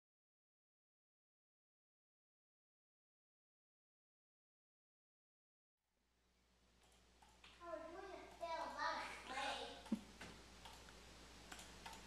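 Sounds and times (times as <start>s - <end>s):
keyboard and mouse clicks: 6.8s - 7.6s, 9.8s - 12.0s.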